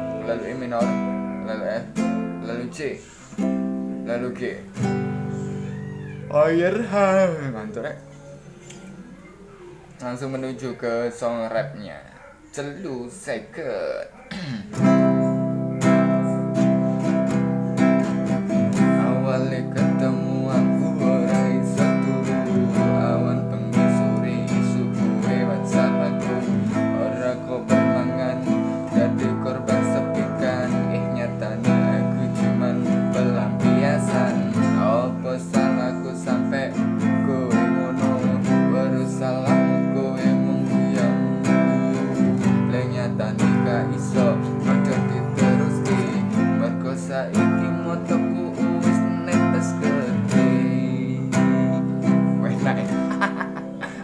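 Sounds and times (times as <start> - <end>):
nylon-string guitar strumming: 0.0 - 8.0, 14.7 - 54.0.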